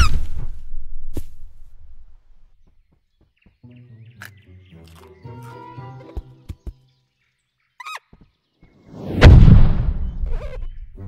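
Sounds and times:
cartoon high squeak: 7.8 - 8.1, 10.2 - 10.8
heavy impact with deep boom: 9.1 - 10.9.

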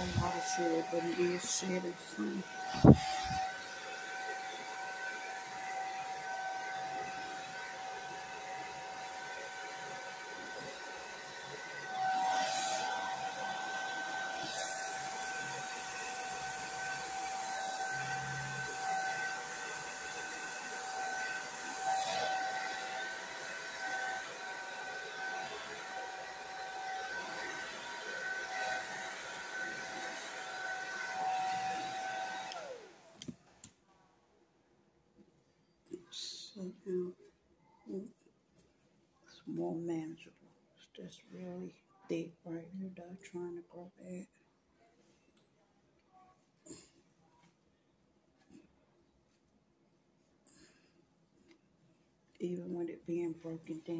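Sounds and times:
hair dryer running: 0.0 - 33.4, 52.4 - 53.9.

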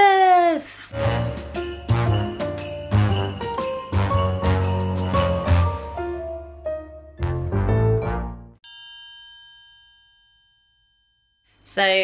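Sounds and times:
bright bell-like chime: 1.6 - 5.8, 8.6 - 11.7.

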